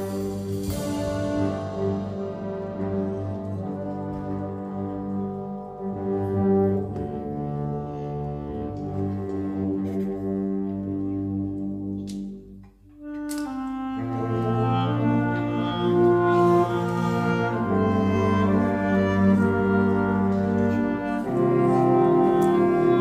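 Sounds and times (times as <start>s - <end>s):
wind band playing: 0.0s - 23.0s.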